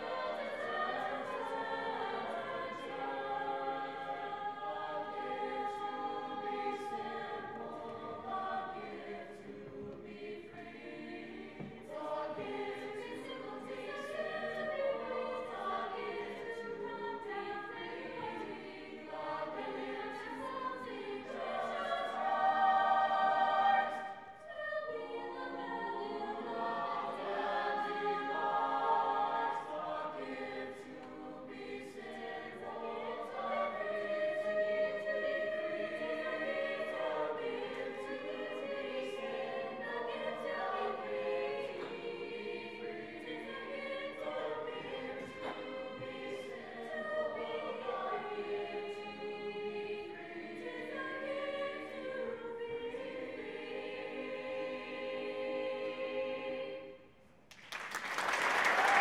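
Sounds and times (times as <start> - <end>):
choir singing in harmony: 0.0 - 57.2, 57.8 - 59.0.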